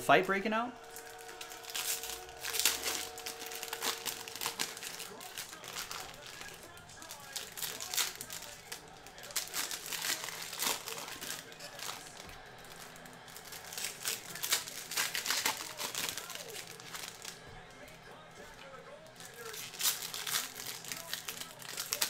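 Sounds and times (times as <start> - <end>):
cards clicking and rustling: 0.8 - 22.0
foil wrapper crinkling: 0.8 - 22.0.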